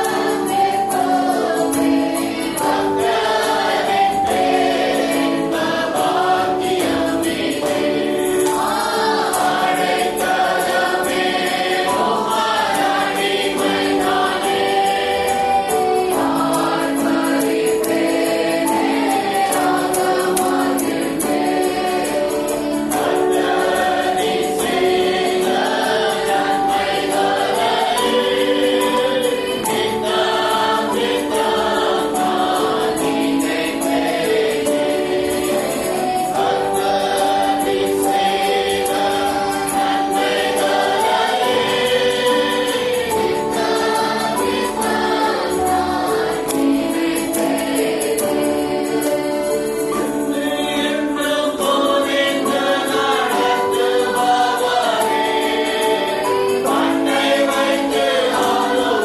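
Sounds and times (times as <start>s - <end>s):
choir singing gospel: 0.0s - 59.0s
instrumental accompaniment: 0.0s - 59.0s.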